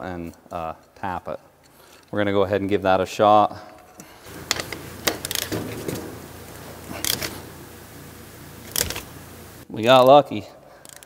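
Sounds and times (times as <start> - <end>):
metal clicks and rattles: 4.0 - 10.1.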